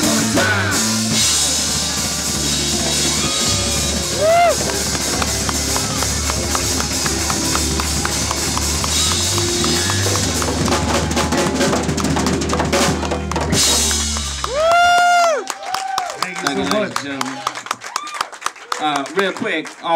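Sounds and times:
live funk band playing: 0:00.0 - 0:15.2
run of drum hits: 0:01.0 - 0:15.2.

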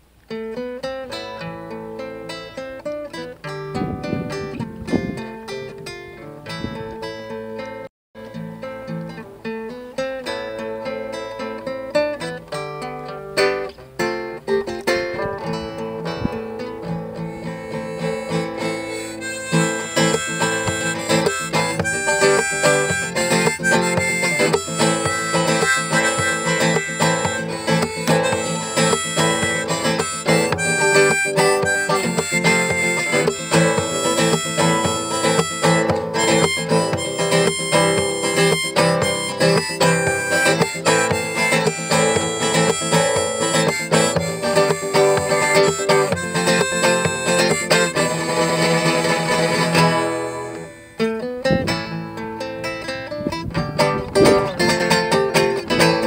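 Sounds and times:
nylon-string guitar playing: 0:00.0 - 0:56.0
harmonica playing: 0:17.0 - 0:51.4.

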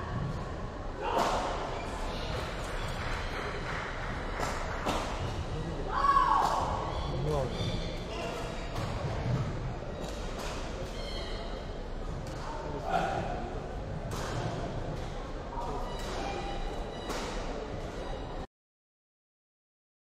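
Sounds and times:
rackets hitting shuttlecock: 0:14.0 - 0:14.6.

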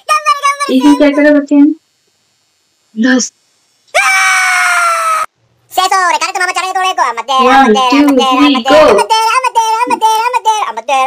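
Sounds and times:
high wavering voice: 0:00.0 - 0:01.8.

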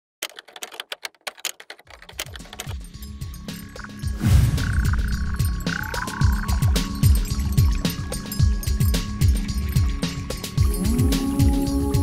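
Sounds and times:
typewriter keys clacking: 0:00.2 - 0:04.0.

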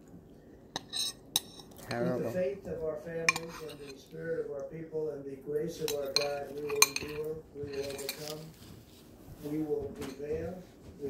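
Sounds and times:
metal spoon clinking on bowl: 0:03.2 - 0:04.0, 0:05.8 - 0:08.4.

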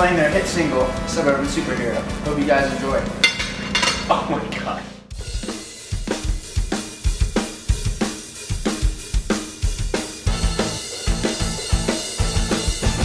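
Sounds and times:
drum kit playing driving beat: 0:00.0 - 0:13.0.

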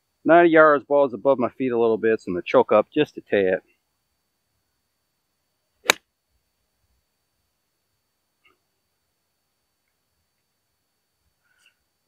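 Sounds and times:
golf club striking ball: 0:05.8 - 0:06.0.

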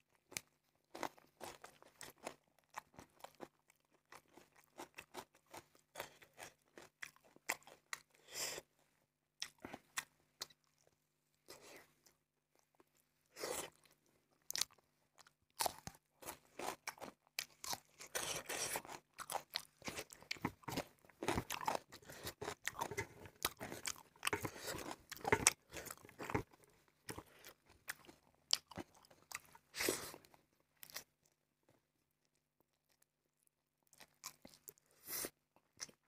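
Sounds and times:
close chewing: 0:09.4 - 0:31.1.

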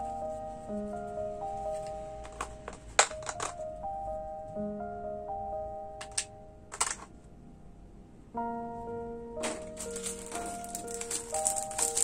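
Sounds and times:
soft background music: 0:00.0 - 0:12.0
plastic tray clicking and crackling: 0:09.4 - 0:12.0.

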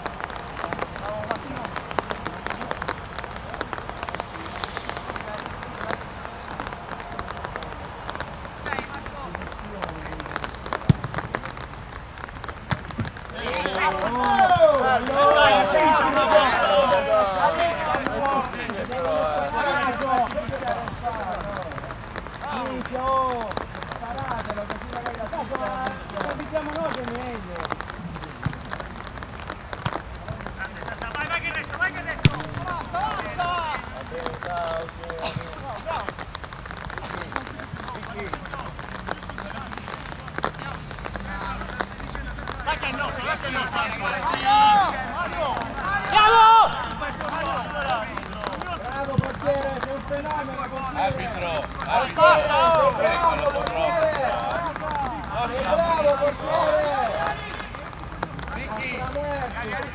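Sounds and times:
outdoor hiss: 0:00.0 - 0:59.9
players shouting: 0:13.1 - 0:21.7, 0:30.6 - 0:34.8, 0:42.6 - 0:59.9.

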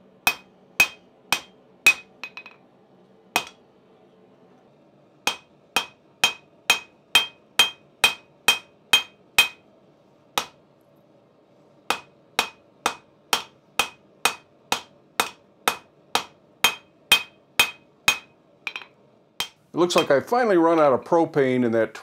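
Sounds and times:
hammer ringing on anvil: 0:00.3 - 0:02.6, 0:03.4 - 0:03.6, 0:05.3 - 0:09.6, 0:11.9 - 0:20.2.

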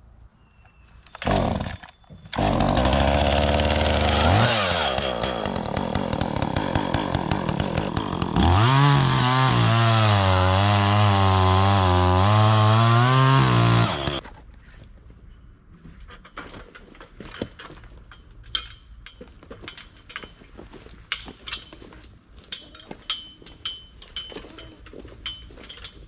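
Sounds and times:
chainsaw revving and cutting log: 0:01.2 - 0:01.8, 0:02.4 - 0:14.2.

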